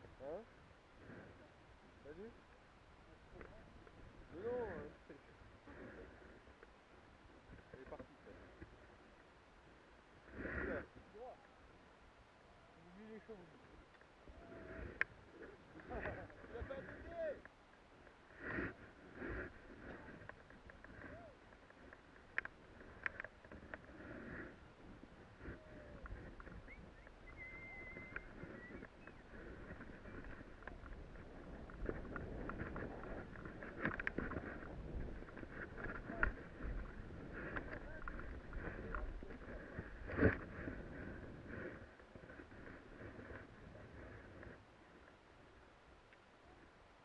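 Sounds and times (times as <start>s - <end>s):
wind in snow: 18.2s - 45.6s.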